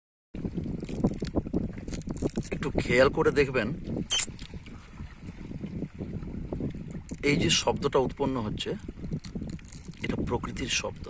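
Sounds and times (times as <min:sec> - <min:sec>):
waves lapping on stony bank: 0:00.4 - 0:11.0
wind buffeting microphone: 0:00.4 - 0:11.0.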